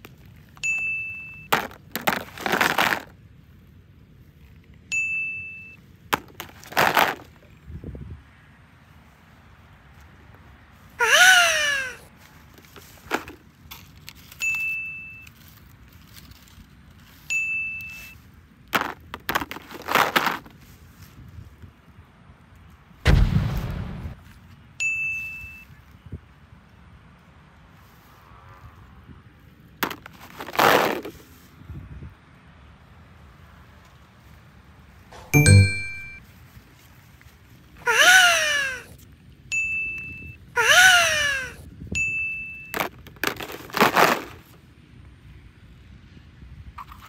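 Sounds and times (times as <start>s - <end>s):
bright ding: 35.2s - 36.2s.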